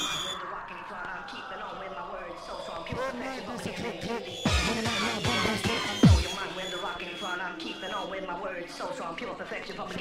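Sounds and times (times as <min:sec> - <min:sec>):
hardcore rave music: 0:00.0 - 0:10.0.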